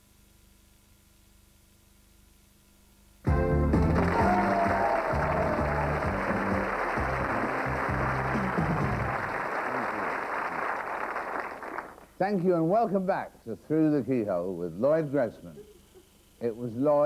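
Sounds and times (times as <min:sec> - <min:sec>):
television theme music: 0:03.2 - 0:10.0
studio audience applause: 0:03.3 - 0:12.2.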